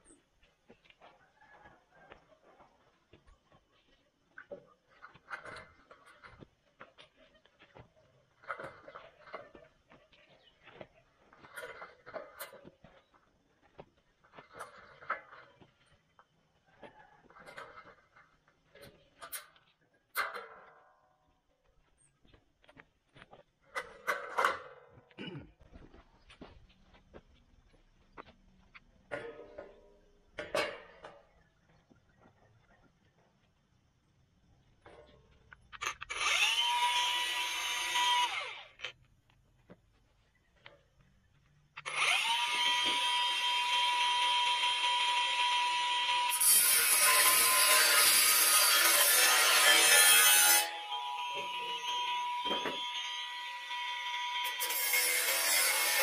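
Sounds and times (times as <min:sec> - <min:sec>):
grinder cutting steel: 0:35.8 - 0:39.0, 0:41.8 - 0:56.0
angle grinder whine: 0:50.4 - 0:56.0.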